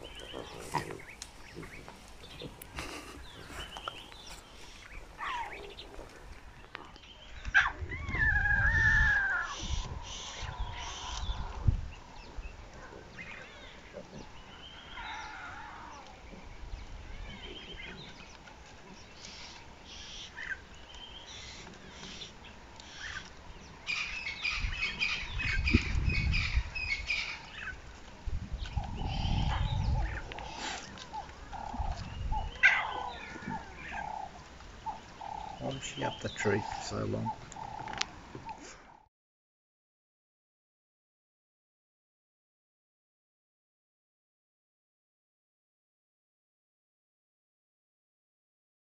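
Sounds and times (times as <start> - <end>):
lion cubs mewing: 0.0 - 11.6, 12.7 - 16.3, 28.6 - 39.0
bird calls: 0.0 - 39.1.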